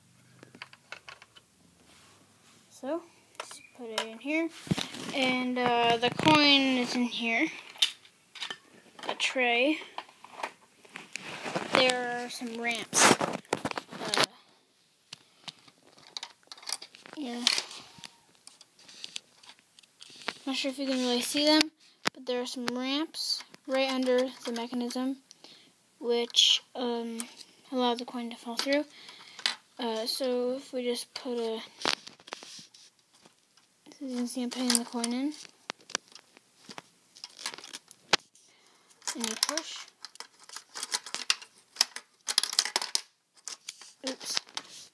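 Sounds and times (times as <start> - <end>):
plastic bricks clicking: 0.4 - 1.4, 16.0 - 18.1, 39.0 - 44.6.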